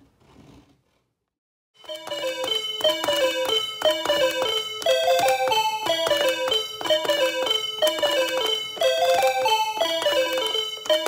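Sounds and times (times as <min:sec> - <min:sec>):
calculator beep tones: 0:01.8 - 0:11.0.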